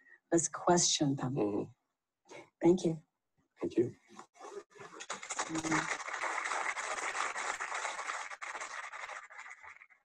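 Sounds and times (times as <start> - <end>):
audience applauding: 4.8 - 10.0.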